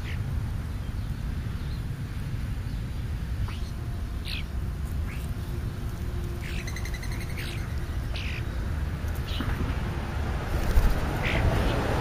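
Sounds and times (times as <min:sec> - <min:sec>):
steady low rumble: 0:00.0 - 0:12.0
starlings whistling: 0:06.4 - 0:08.5.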